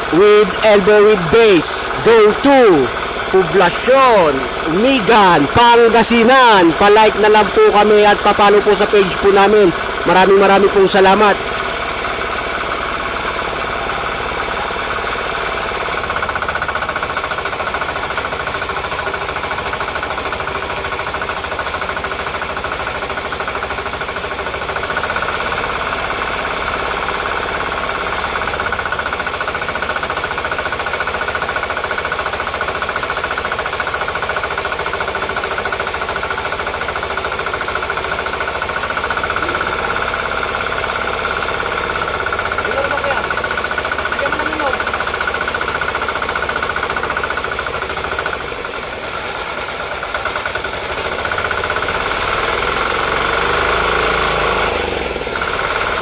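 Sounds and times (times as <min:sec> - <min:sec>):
small engine running: 0:00.0 - 0:56.0
water pump priming: 0:00.0 - 0:56.0.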